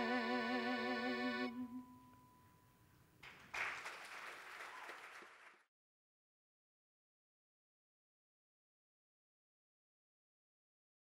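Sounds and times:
audience applause: 0:03.2 - 0:05.7.

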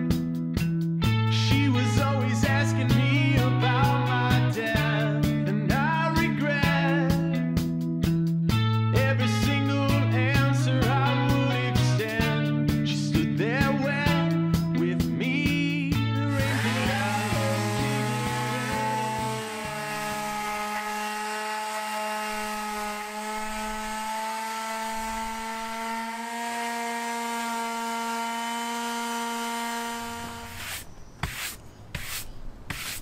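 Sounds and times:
palm sander humming: 0:16.2 - 0:33.0
sandpaper scratching wood: 0:16.3 - 0:33.0
hand brush sweeping: 0:30.4 - 0:33.0.

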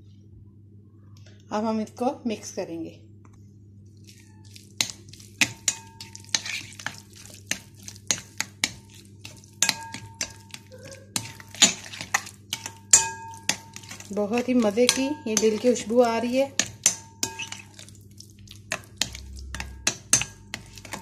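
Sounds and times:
spoon stirring in glass bowl: 0:04.0 - 0:21.0.

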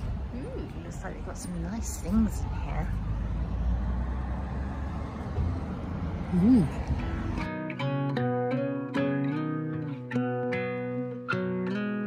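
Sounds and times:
street background rumble: 0:00.0 - 0:12.0.

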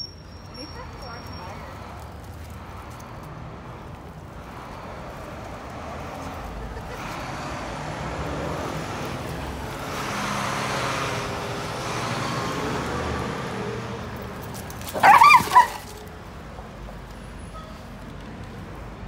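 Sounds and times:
road traffic passing: 0:00.0 - 0:19.0
dog barking: 0:15.0 - 0:15.9.

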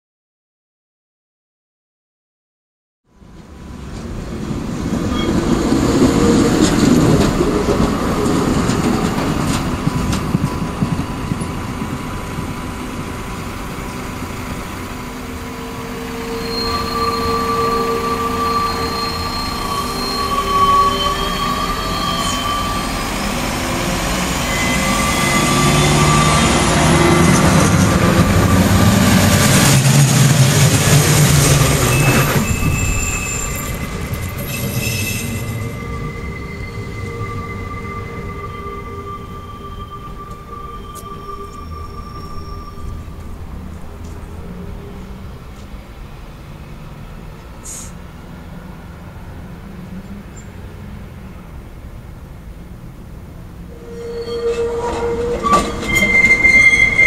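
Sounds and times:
tram rumbling on rails: 0:03.1 - 0:57.0
diesel railcar engine whining: 0:03.2 - 0:57.0
steel wheels squealing on track: 0:04.9 - 0:45.4, 0:53.7 - 0:57.0.

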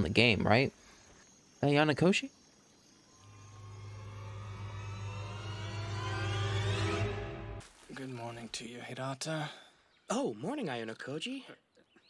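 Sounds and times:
tone rising in pitch: 0:03.1 - 0:07.6.

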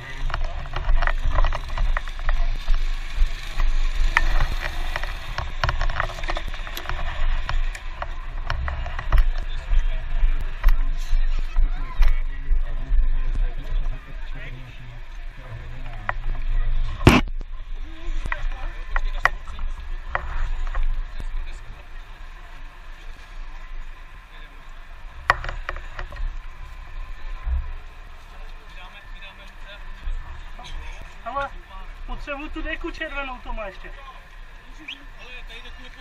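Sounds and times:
low uneven microphone rumble: 0:00.0 - 0:36.0.

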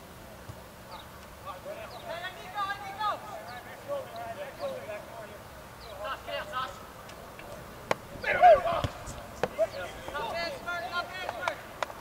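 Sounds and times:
players shouting: 0:01.4 - 0:12.0
ball being kicked: 0:07.8 - 0:10.4.

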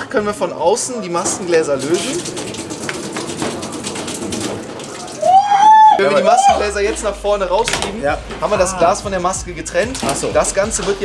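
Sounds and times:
hose spraying into metal sink: 0:01.2 - 0:07.1
high-pitched held vocal cry: 0:05.2 - 0:06.6.

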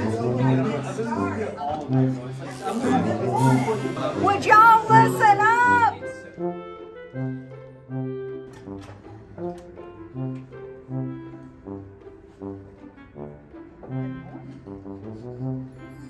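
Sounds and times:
low brass playing bouncy tune: 0:06.4 - 0:15.9.

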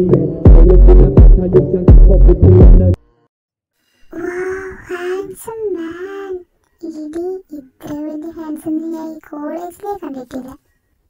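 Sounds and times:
high-pitched voice singing: 0:04.1 - 0:10.6.

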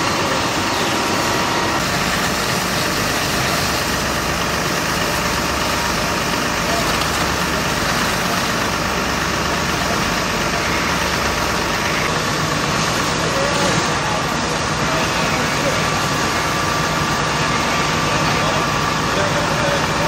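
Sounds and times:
fire engines running: 0:00.0 - 0:20.0
hiss of water jets: 0:00.1 - 0:18.4.

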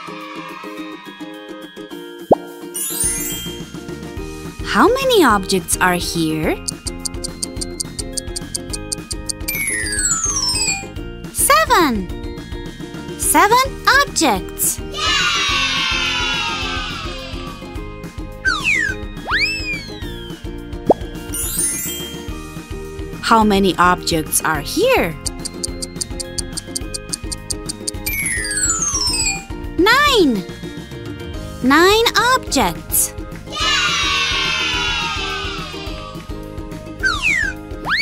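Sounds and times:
children's background music: 0:00.0 - 0:38.0
tinkling sparkle effect: 0:02.7 - 0:03.7, 0:21.4 - 0:22.3, 0:27.8 - 0:29.5.

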